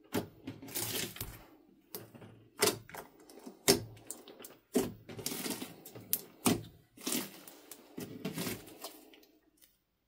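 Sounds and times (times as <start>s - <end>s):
slime kneaded by hand: 0.0s - 10.0s.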